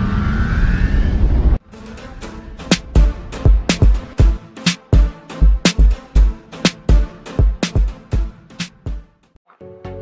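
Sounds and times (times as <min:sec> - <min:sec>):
faint rising whine: 0:00.0 - 0:01.6.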